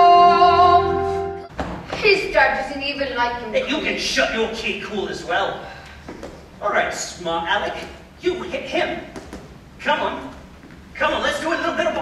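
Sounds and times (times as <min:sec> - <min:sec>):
stage musical accompaniment: 0:00.0 - 0:01.6.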